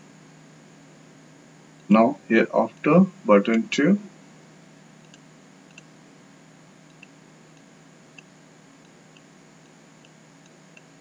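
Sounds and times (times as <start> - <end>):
low room hum: 0.0 - 11.0
faint computer mouse clicks: 5.0 - 5.9.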